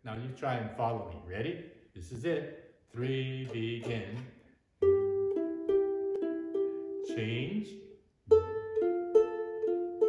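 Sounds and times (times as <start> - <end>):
ukulele single notes plucked: 3.5 - 10.0.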